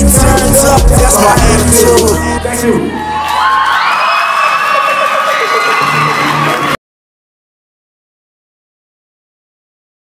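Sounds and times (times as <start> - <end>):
hip hop backing track: 0.0 - 3.0
audience cheering and whooping: 2.4 - 6.8
high screams: 2.9 - 6.8.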